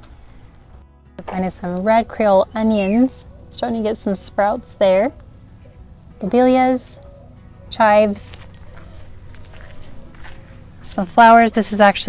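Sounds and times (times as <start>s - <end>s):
footsteps on dirt: 8.1s - 11.2s.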